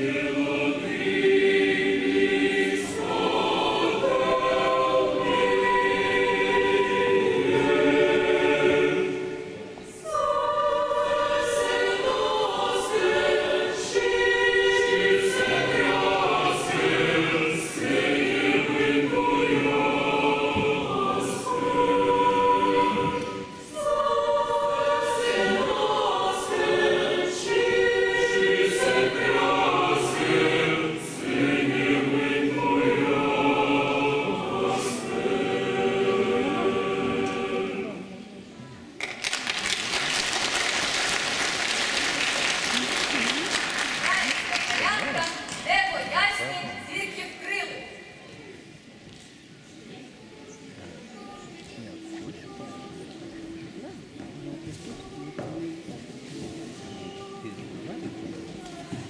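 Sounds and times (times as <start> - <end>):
choir of young voices singing: 0.0 - 48.7, 50.2 - 59.0.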